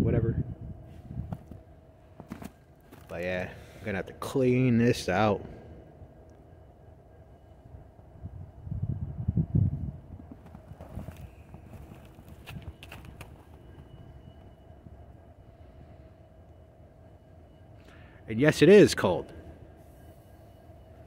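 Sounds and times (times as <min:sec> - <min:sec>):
footsteps crunching through snow: 0:10.3 - 0:13.6.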